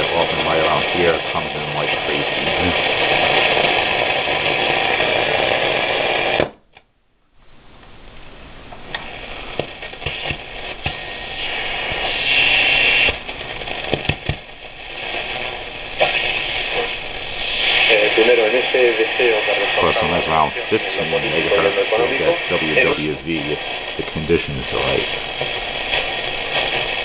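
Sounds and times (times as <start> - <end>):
radio static and crackle: 0.0 - 27.0.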